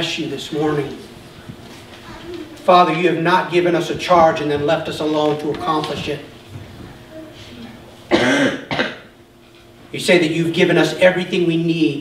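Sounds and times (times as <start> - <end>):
man coughing: 8.1 - 9.1.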